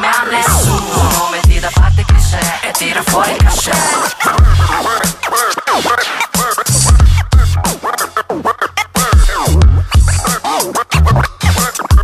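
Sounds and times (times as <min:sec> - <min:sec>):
hip-hop beat: 0:00.0 - 0:12.0
turntable scratching: 0:00.0 - 0:12.0.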